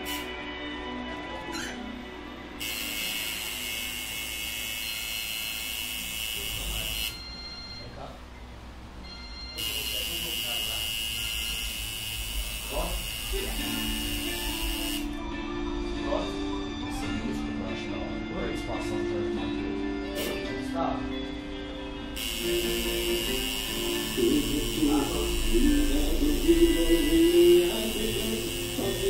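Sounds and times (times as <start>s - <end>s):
tattoo machine buzzing: 0.0s - 0.3s, 2.6s - 7.3s, 9.6s - 15.2s, 20.2s - 20.4s, 22.2s - 29.0s.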